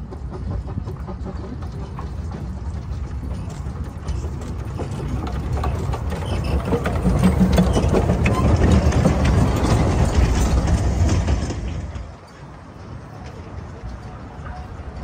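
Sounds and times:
steam train passing: 0:00.0 - 0:15.0
wheels clanking on rails: 0:00.0 - 0:15.0.

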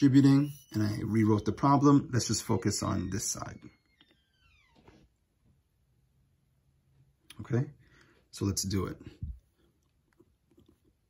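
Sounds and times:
faint falling squeak-like tone: 0:00.0 - 0:05.1.

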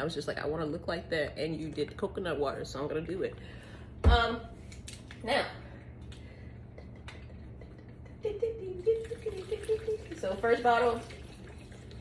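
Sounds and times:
liquid glugging into blender jar: 0:08.9 - 0:12.0.

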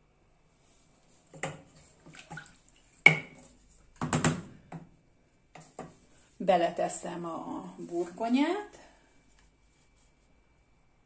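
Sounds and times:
broth sloshing in a pot: 0:00.6 - 0:05.0
wooden spoon knocking against pot: 0:03.1 - 0:03.4.

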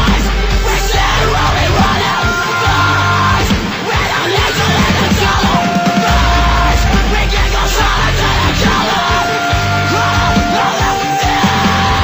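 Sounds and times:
drums: 0:00.0 - 0:12.0
electric guitars: 0:00.0 - 0:12.0
person yelling lead vocal: 0:00.0 - 0:12.0
punk rock band playing: 0:00.0 - 0:12.0.

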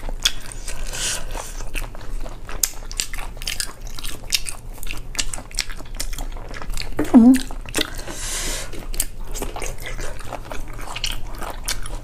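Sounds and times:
wet eating sounds: 0:00.0 - 0:12.0.

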